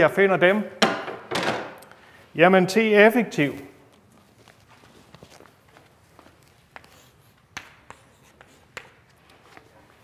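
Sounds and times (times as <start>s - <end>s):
chalk tapping and scratching: 6.7s - 9.7s.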